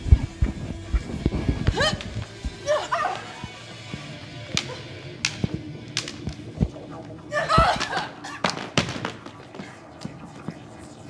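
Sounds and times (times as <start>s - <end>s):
background music: 0.0s - 11.0s
prop swords clacking: 1.6s - 10.5s.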